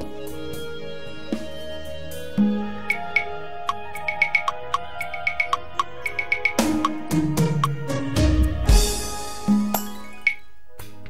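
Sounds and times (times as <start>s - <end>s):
instrumental backing track: 0.0s - 11.0s.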